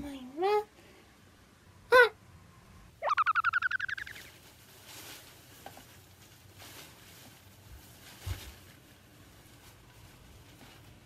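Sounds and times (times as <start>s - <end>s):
springy boing: 3.0s - 4.2s
rising warbling trill: 3.0s - 4.3s.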